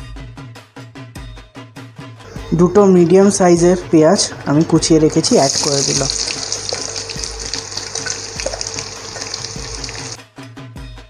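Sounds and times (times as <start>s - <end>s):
onions sizzling in oil: 5.2s - 10.2s.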